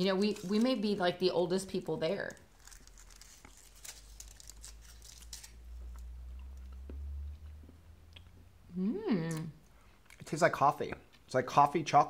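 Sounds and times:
foil wrapper crinkling: 0:00.0 - 0:05.7.

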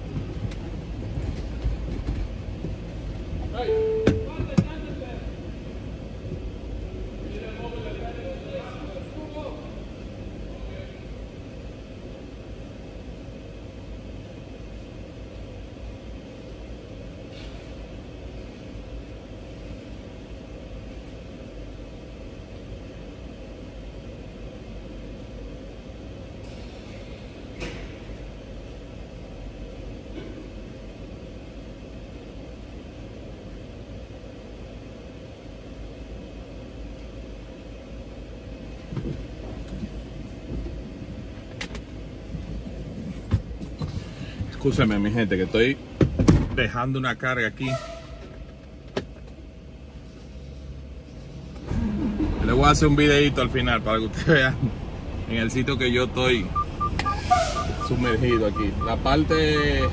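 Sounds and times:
low mechanical rumble: 0:00.0 - 0:59.9
faint hum: 0:48.7 - 0:59.9.

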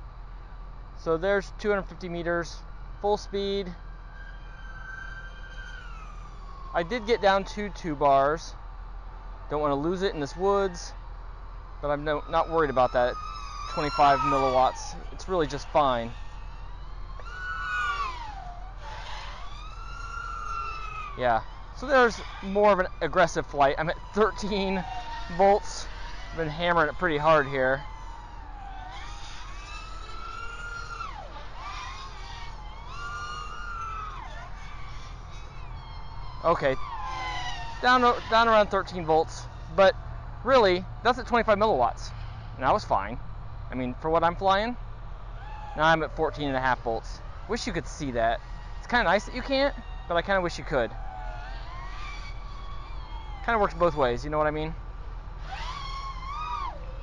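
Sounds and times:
drone motors whining: 0:00.0 - 0:57.0
low steady hum: 0:00.0 - 0:57.0.

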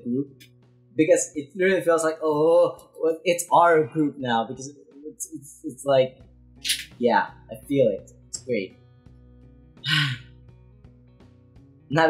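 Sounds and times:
faint background music: 0:00.0 - 0:12.0
breathy vocal gasp: 0:09.8 - 0:10.3.

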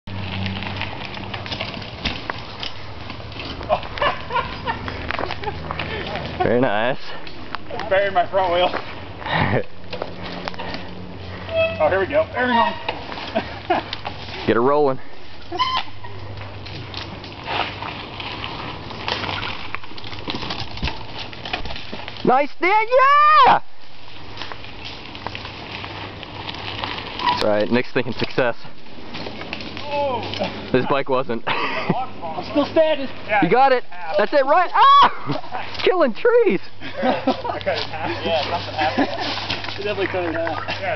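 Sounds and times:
bike tire scraping against log: 0:00.1 - 0:22.6, 0:23.4 - 0:31.2, 0:31.8 - 0:40.9
voices: 0:01.0 - 0:40.9.

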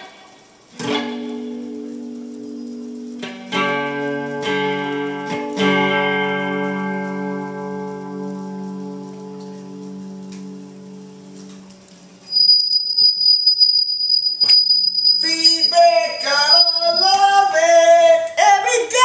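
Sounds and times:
electric guitar chord ringing: 0:00.0 - 0:13.6
high-pitched whine: 0:00.0 - 0:18.3.

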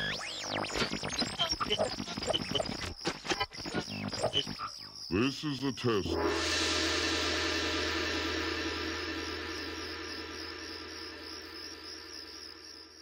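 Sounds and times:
electronic drone with buzzing hiss: 0:06.4 - 0:13.0.

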